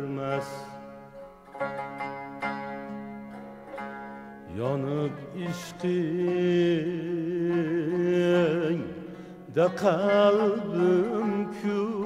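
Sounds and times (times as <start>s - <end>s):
plucked string instrument phrase: 0.0s - 12.0s.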